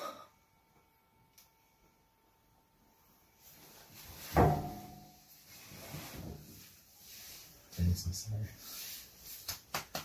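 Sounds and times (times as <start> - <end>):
soft movement sounds: 2.9 - 9.7.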